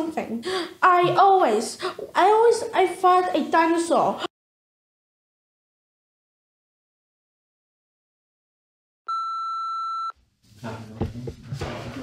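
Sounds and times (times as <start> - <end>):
electronic test tone: 9.1 - 10.1.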